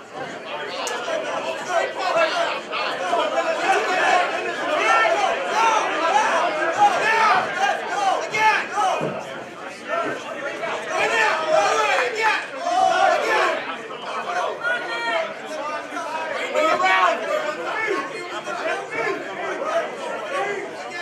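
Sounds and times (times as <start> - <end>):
crowd talking and shouting: 0.0 - 21.0.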